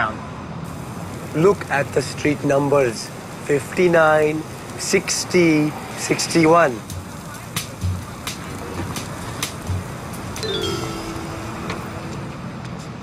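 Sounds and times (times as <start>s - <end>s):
traffic noise: 0.0s - 13.0s
pitched tone sliding down: 10.4s - 12.6s.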